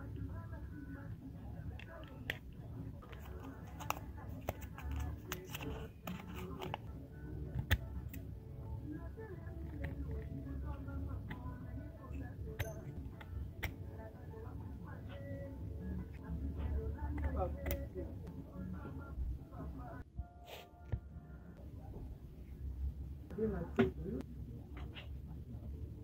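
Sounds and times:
background music: 0.0 - 21.8.

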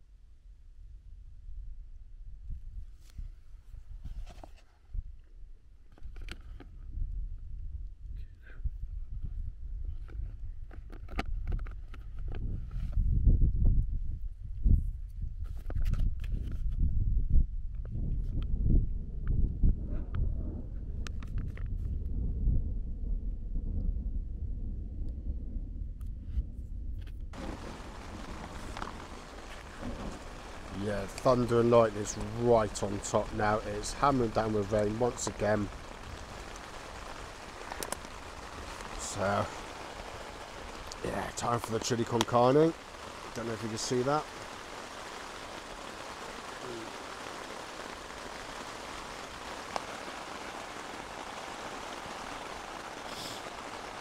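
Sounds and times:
thunder rumbling: 26.6 - 54.0
heavy rain on a tent: 27.4 - 54.0
light ticks: 37.7 - 38.2.

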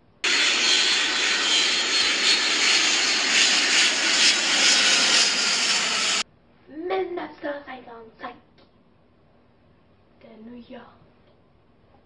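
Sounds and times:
aircraft engine noise: 0.0 - 6.2.

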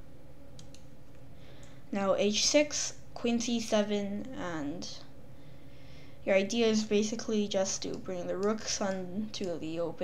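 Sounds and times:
faint computer mouse clicks: 0.6 - 0.9.

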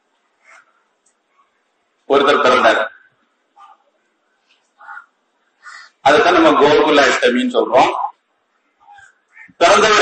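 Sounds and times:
bird calling: 4.6 - 6.0, 8.6 - 9.6.

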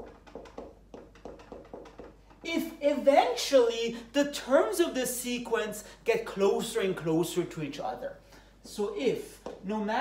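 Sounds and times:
marker writing on whiteboard: 0.0 - 2.4.

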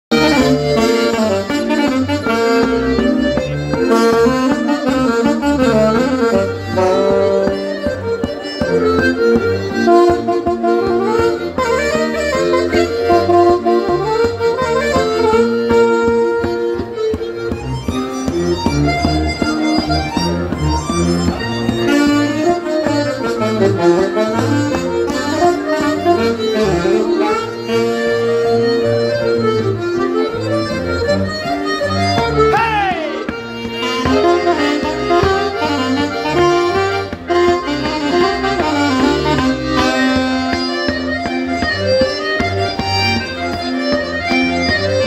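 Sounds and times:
button accordion playing: 0.1 - 45.0
saxophone melody: 0.1 - 45.0.

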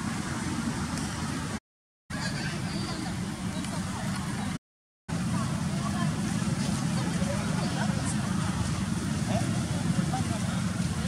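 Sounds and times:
faint distant voices: 2.1 - 11.0.

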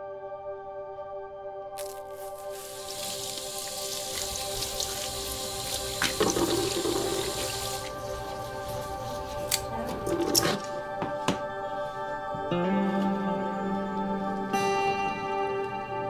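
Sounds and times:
ambient music of held tones: 0.0 - 16.0
tap water running into sink: 1.8 - 8.2.

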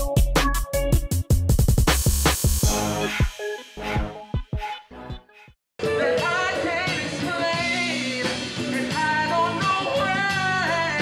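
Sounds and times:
steady drum beat: 0.0 - 4.6, 6.2 - 10.6
man singing: 6.0 - 11.0.

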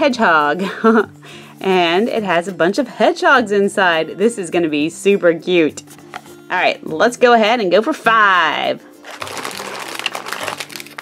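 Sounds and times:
foil packets crinkling: 9.0 - 11.0.

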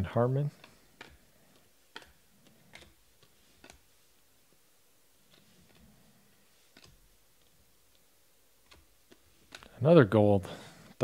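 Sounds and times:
cards being flipped: 0.6 - 4.3, 5.2 - 5.9, 6.5 - 9.7.

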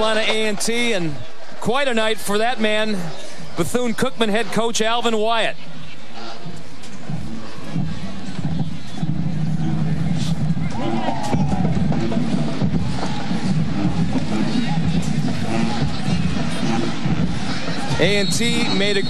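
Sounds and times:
stadium crowd noise: 0.0 - 19.0
marching band playing: 10.9 - 19.0.

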